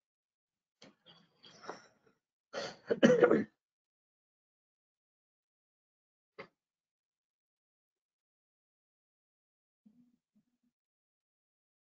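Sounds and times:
man coughing: 2.6 - 3.5.

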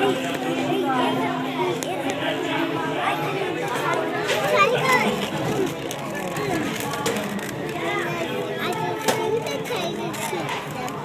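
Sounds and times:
children's voices: 0.0 - 11.0
many voices talking: 0.0 - 11.0.

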